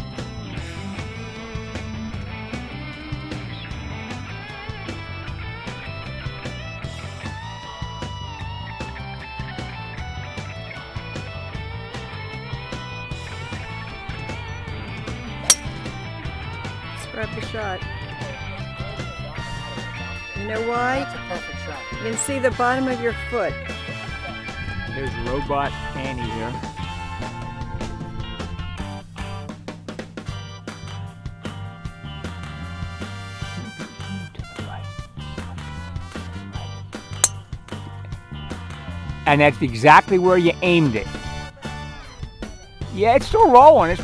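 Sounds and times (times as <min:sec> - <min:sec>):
background music with guitar: 0:00.0 - 0:44.0
golf club hitting ball: 0:15.5 - 0:15.9, 0:37.2 - 0:37.4.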